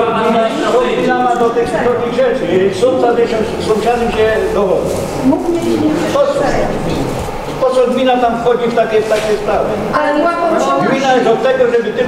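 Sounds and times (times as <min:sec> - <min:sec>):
voices talking: 0:00.0 - 0:12.0.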